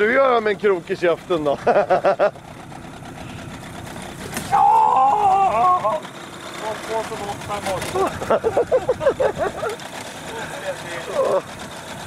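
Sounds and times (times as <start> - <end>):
small motor humming: 2.1 - 12.0.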